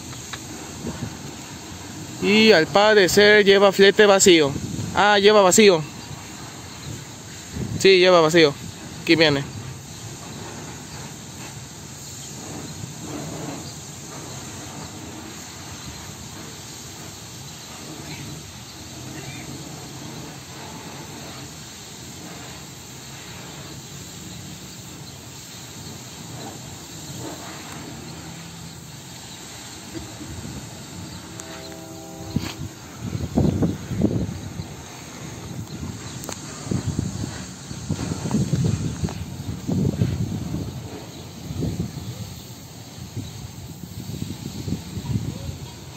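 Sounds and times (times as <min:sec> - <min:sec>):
loud uneven low rumbling: 0:00.0 - 0:45.9
horn blast: 0:29.4 - 0:35.4.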